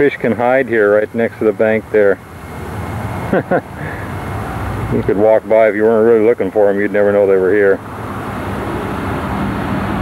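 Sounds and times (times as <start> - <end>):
steady outdoor rushing noise: 0.0 - 10.0.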